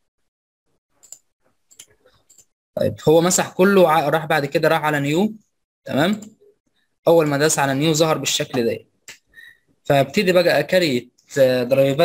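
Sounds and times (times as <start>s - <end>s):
computer mouse clicks: 1.0s - 2.5s.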